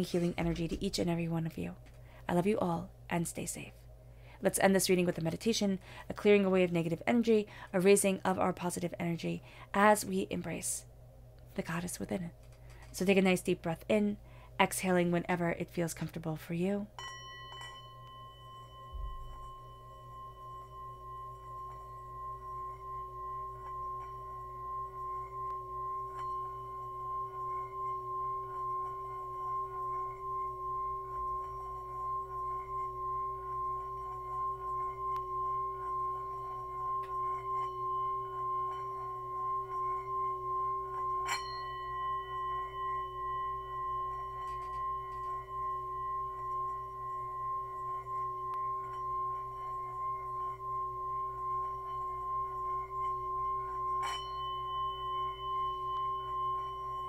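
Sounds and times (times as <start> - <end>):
singing bowl ringing hum: 0.0 - 57.0.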